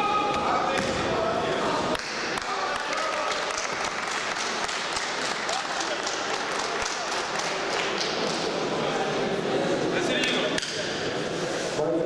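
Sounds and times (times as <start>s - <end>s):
crowd applauding: 2.0s - 8.7s.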